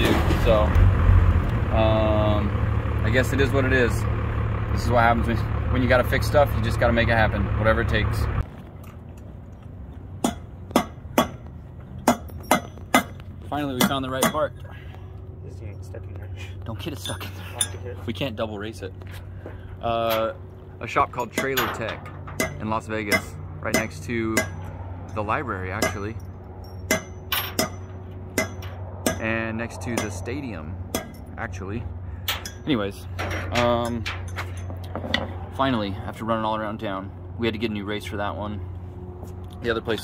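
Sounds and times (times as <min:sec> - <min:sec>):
steady low hum: 0:00.7 - 0:40.0
metal tool tapping wheel hub: 0:10.2 - 0:14.6, 0:21.1 - 0:30.3, 0:30.9 - 0:31.4, 0:32.2 - 0:35.3.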